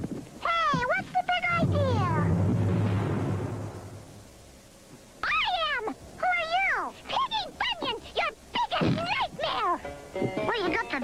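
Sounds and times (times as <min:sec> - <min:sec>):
rumbling cartoon sound effect: 0:00.5 - 0:04.2.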